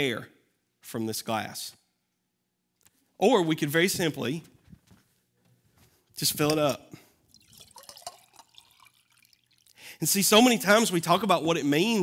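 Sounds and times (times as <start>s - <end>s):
water pouring into a glass: 7.2s - 9.8s.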